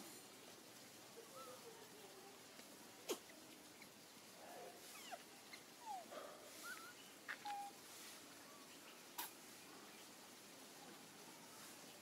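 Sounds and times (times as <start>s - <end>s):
macaques squeaking and cooing: 3.0s - 4.0s, 4.8s - 7.8s.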